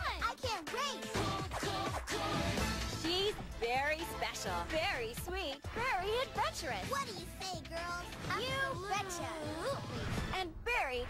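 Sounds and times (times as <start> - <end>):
soft background music: 0.0 - 10.6.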